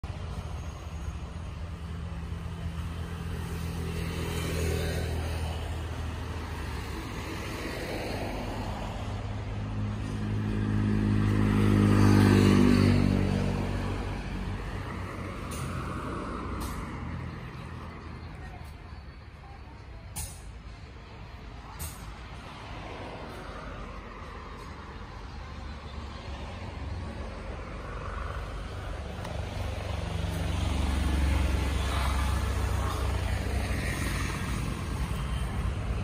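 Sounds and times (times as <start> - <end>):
road traffic drone: 0.0 - 36.0
vehicle passing by: 1.8 - 19.2, 21.6 - 36.0.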